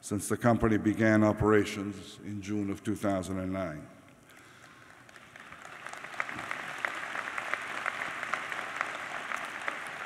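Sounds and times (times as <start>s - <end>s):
audience applauding: 4.6s - 10.0s.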